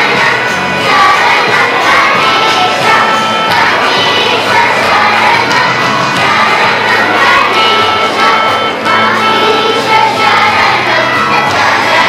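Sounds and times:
children singing in unison: 0.0s - 12.0s
steady held accompanying tone: 0.0s - 12.0s.

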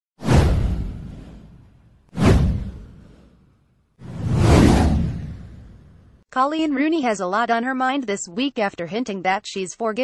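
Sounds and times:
whoosh sound effect: 0.2s - 6.0s.

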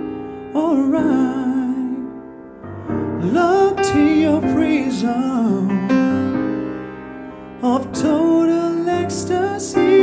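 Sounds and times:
held keyboard chord: 0.0s - 10.0s
person singing: 0.4s - 6.4s, 7.6s - 10.0s.

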